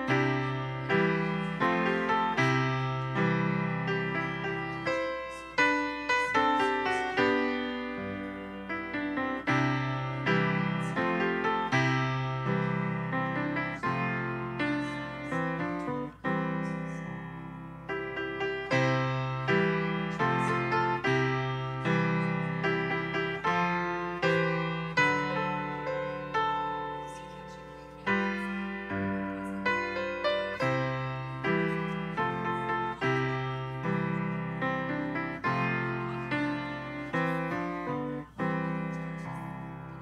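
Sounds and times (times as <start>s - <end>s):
slow solo piano chords: 0.0s - 40.0s.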